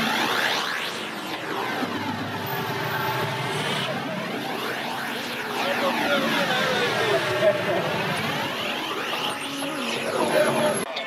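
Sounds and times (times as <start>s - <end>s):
vehicles driving past: 0.6s - 10.8s
people's voices: 1.1s - 11.0s.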